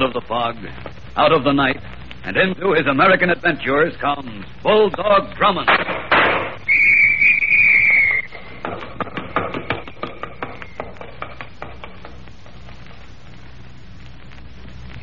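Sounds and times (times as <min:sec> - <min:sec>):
gunshot: 0:05.7 - 0:06.6
police whistle blast: 0:06.6 - 0:08.4.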